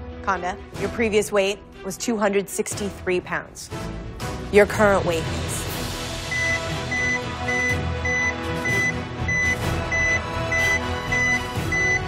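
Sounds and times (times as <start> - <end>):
suspense music: 0.0 - 12.0.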